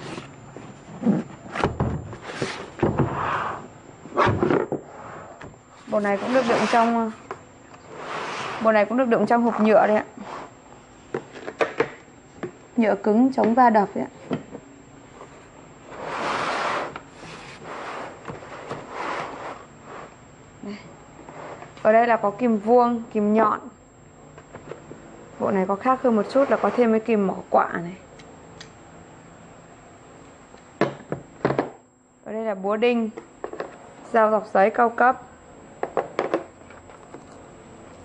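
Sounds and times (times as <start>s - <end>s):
plastic case scraping cardboard: 5.9s - 7.1s.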